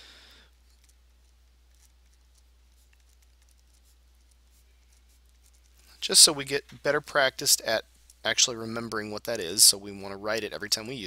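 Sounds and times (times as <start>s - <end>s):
low steady hum: 0.0s - 11.0s
pen scratching on paper: 1.7s - 5.8s.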